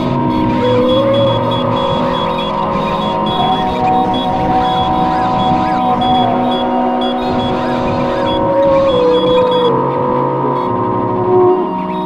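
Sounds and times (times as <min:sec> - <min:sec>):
grainy crackling low texture: 0:00.0 - 0:11.2
synthesizer drones: 0:00.0 - 0:12.0
short high beeps: 0:00.8 - 0:09.6.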